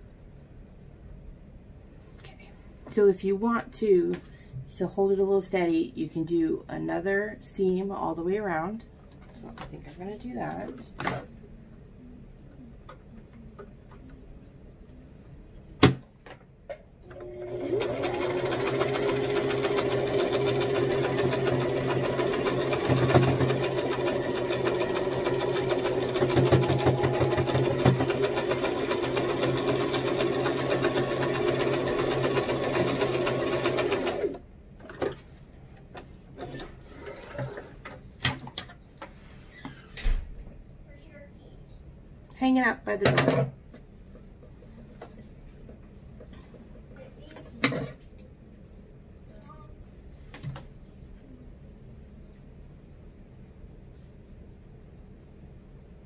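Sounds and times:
sewing machine stitching: 17.1 - 34.4.

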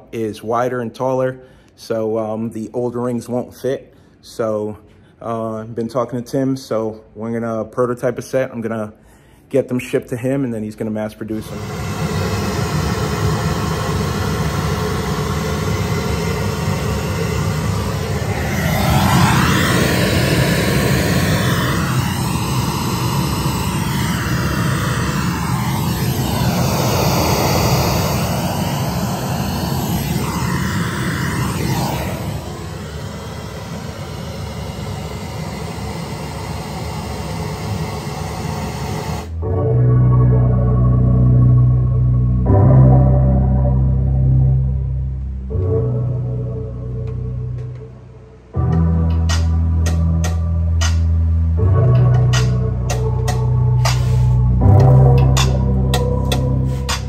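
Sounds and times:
heavy deep bass note: 11.4 - 57.0
loud music through speakers: 48.6 - 57.0.

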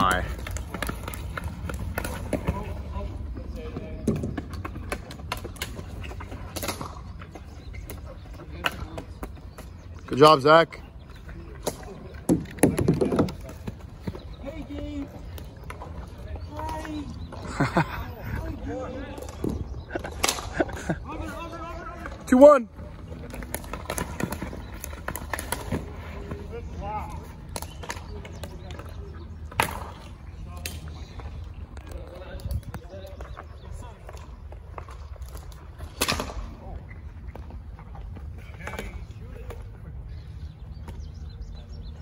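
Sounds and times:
sticks and ball clacking: 0.1 - 10.2, 23.2 - 38.0.

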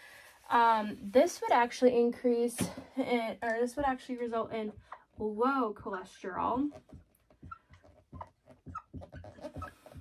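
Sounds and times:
marker squeaking on whiteboard: 6.6 - 10.0.

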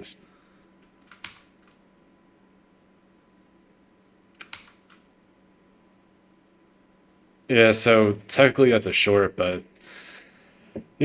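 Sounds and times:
keyboard or mouse clicks: 4.4 - 5.0.

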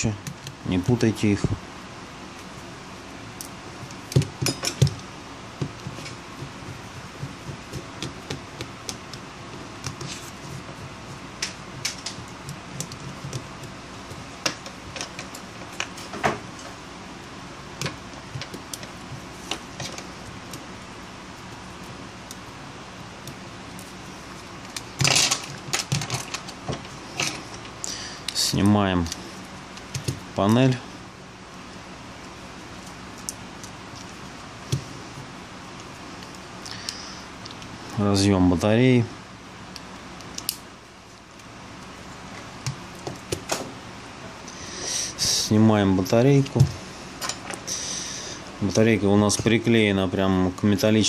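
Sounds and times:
clattering handling: 25.0 - 27.4.

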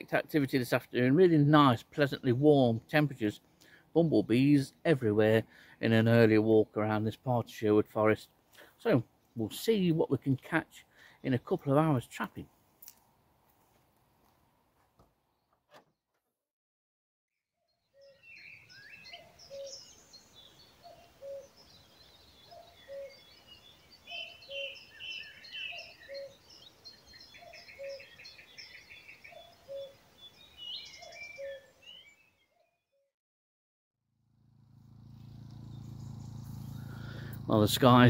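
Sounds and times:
birds chirping and trilling: 0.0 - 12.3, 17.8 - 32.8, 34.7 - 38.0
generator humming: 34.3 - 38.0.

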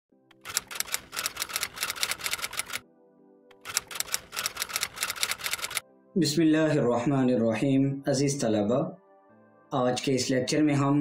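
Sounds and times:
typewriter typing clicks: 0.3 - 2.8, 3.5 - 5.8
faint background music: 0.4 - 11.0.

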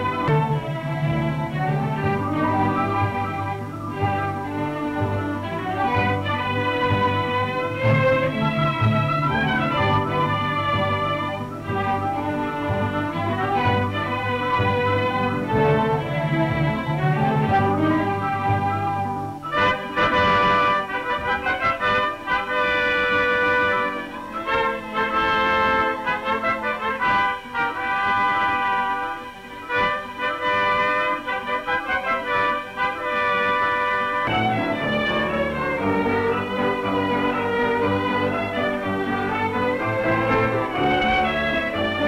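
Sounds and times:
orchestral music with brass: 0.0 - 42.0.

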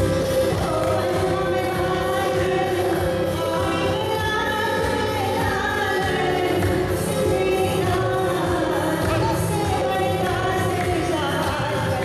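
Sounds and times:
music: 0.0 - 12.0
person singing through loudspeaker: 0.0 - 12.0.

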